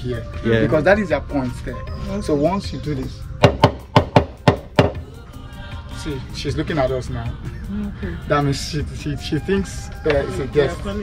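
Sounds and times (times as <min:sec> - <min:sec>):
talking drum strikes: 0:03.4 - 0:05.1.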